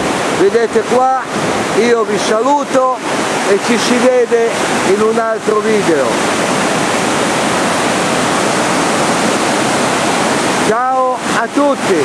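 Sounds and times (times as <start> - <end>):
turbulent white water rushing: 0.0 - 12.0.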